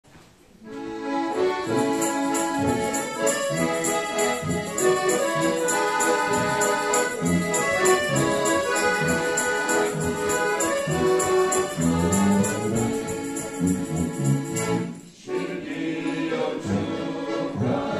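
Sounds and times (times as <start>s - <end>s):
piano accordions playing: 0.6s - 17.9s.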